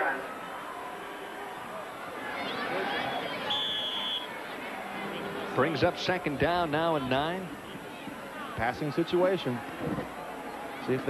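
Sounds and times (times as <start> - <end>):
stadium crowd noise: 0.0 - 11.0
referee whistle blast: 3.1 - 4.4.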